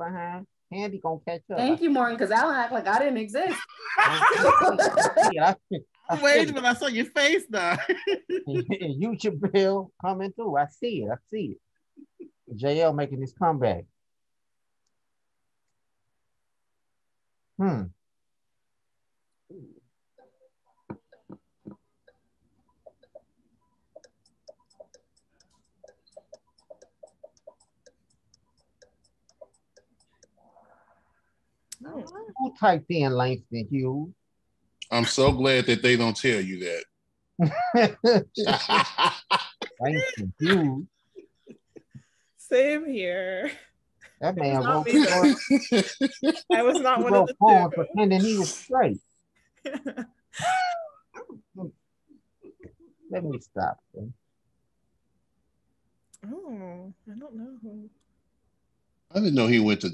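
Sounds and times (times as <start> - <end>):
people laughing: 2.3 - 5.4, 7.6 - 9.5, 34.9 - 36.8, 37.4 - 40.8, 44.4 - 48.6, 59.2 - 59.9
countdown timer ticking: 24.0 - 30.4.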